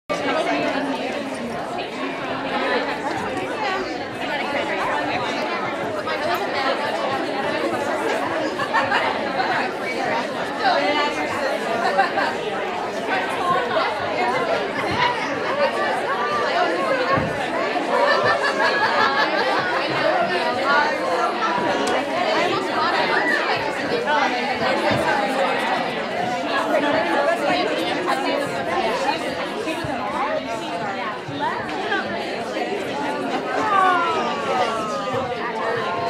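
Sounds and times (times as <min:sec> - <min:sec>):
crowd chatter: 0:00.1 - 0:36.0.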